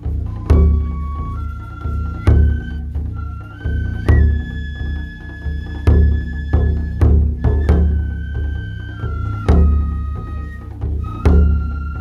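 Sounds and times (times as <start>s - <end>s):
high flute melody: 0.0s - 12.0s
taiko drums ensemble: 0.0s - 12.0s.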